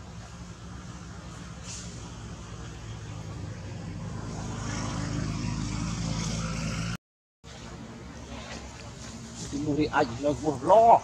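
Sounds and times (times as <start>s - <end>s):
motor engine droning: 0.0s - 10.3s.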